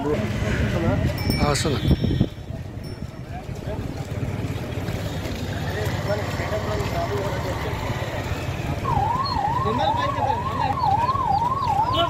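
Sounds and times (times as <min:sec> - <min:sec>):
electronic vehicle siren: 0:08.0 - 0:12.0.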